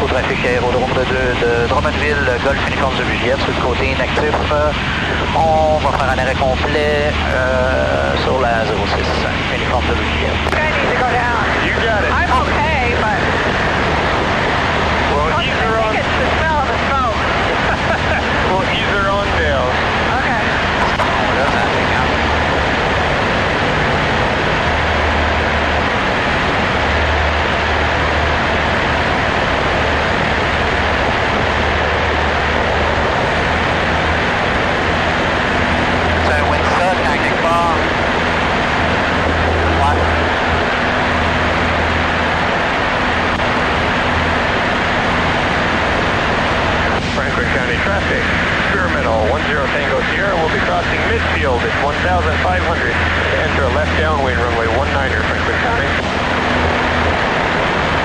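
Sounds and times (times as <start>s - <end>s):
light aircraft engine droning: 0.0s - 58.0s.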